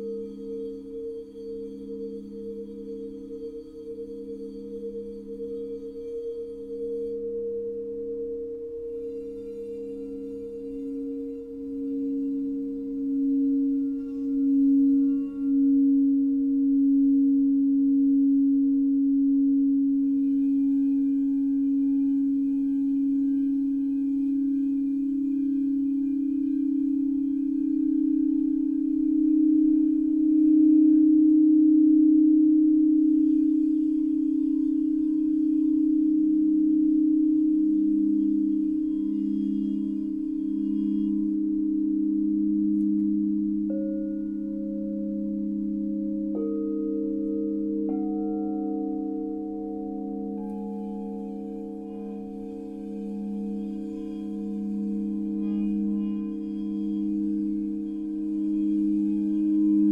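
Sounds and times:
crystal singing bowls ringing: 0.0s - 59.9s.

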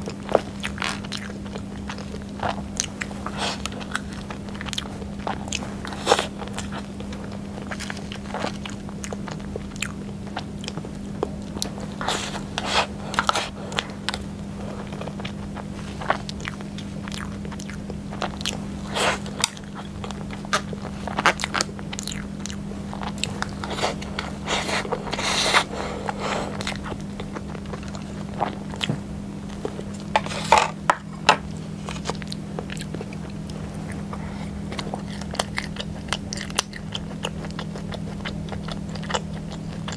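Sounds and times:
biting and chewing cake: 0.0s - 39.9s
steady low hum: 0.0s - 39.9s.

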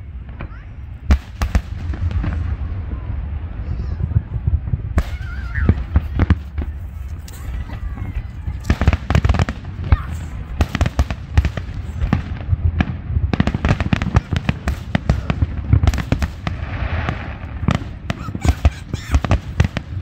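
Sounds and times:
firework hissing: 13.3s - 20.0s.

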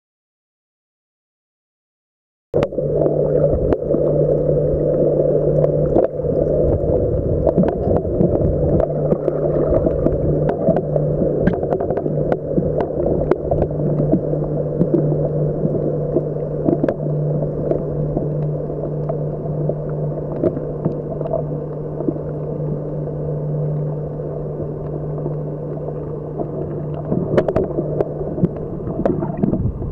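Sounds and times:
sharp clicks and crackles: 2.6s - 29.7s
constant low hum: 2.6s - 29.9s
dull underwater rush: 2.6s - 29.9s.

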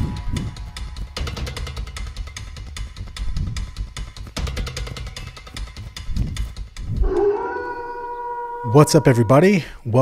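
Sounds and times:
drum-led music: 0.0s - 7.2s
wolf howling: 7.0s - 9.6s.

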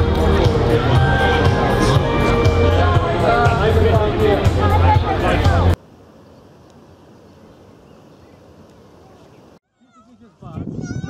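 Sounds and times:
many voices on beach: 0.0s - 5.8s
faint harbour ambience: 0.0s - 10.4s
high wavering calls: 0.8s - 3.8s.

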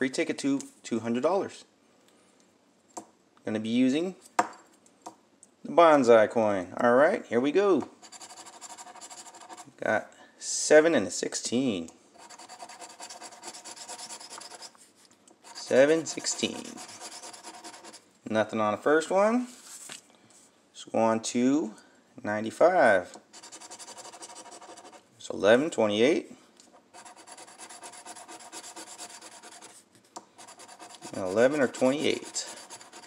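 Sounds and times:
coin scratching ticket: 8.0s - 9.7s, 12.2s - 14.7s, 15.4s - 18.0s, 23.3s - 25.0s, 26.9s - 29.8s, 30.4s - 33.0s.

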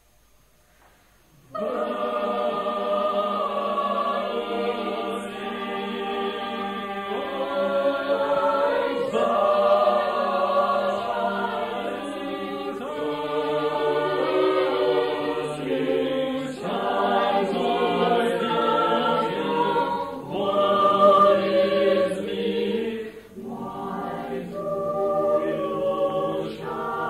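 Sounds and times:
choir singing in parts: 1.4s - 27.0s.

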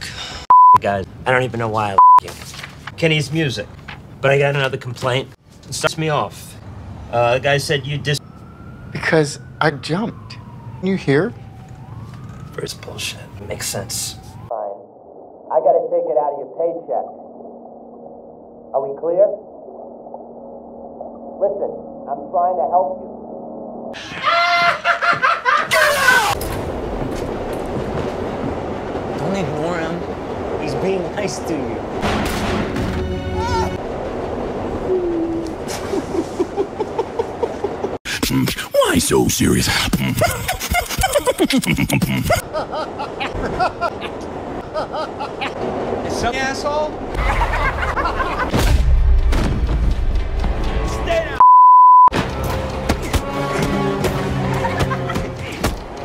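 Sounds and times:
censor bleep tone: 0.5s - 0.8s, 2.0s - 2.2s, 51.4s - 52.1s
film soundtrack: 26.3s - 35.7s, 46.8s - 51.4s, 52.1s - 56.0s
subway train running: 26.5s - 38.0s, 42.4s - 48.4s.

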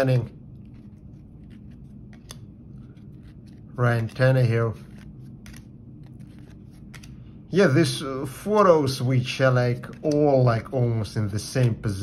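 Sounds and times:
cards flipped by hand: 0.6s - 7.2s.

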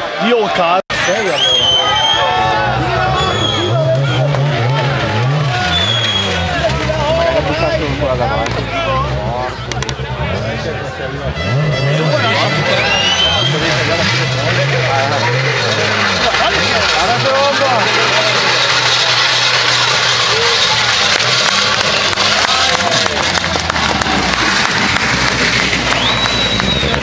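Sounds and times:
spectators chattering: 0.0s - 27.0s
rally car engine at low revs: 2.0s - 27.0s.

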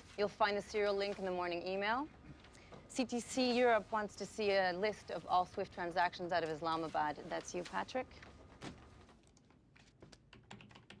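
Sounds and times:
computer keyboard typing: 9.8s - 11.0s.

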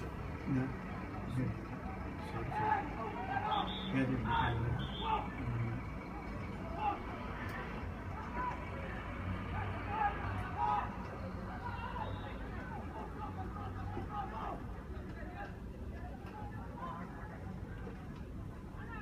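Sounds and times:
low engine hum: 0.0s - 15.1s.

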